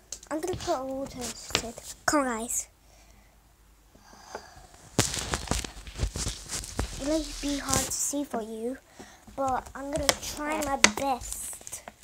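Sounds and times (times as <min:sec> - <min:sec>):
phone being handled: 0:05.0 - 0:08.0.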